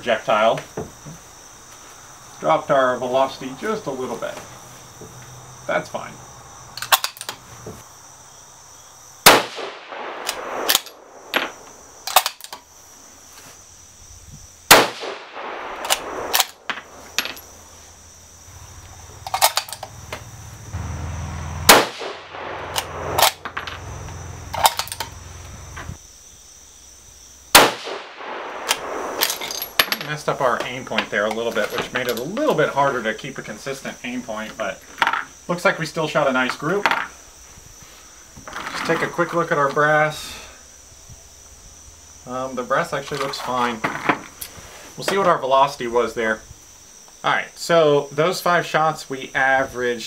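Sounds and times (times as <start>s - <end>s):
rifle shots: 9.2s - 12.4s, 14.7s - 17.6s, 21.6s - 23.9s, 27.5s - 29.9s.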